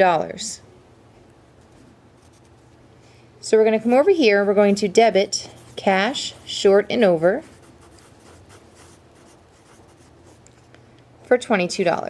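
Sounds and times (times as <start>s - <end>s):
pen scratching on paper: 5.5s - 10.4s.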